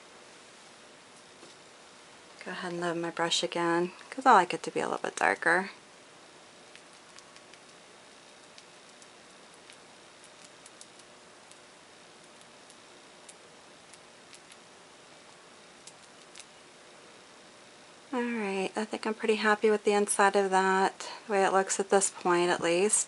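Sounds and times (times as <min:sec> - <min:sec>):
room hiss: 0:00.0 - 0:23.0.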